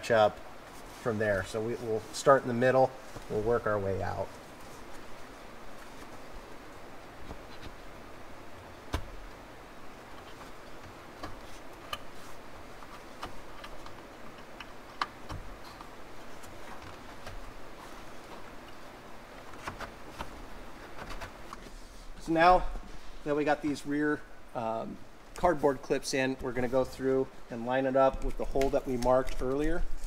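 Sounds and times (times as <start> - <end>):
handling rustle: 28.0 - 30.0.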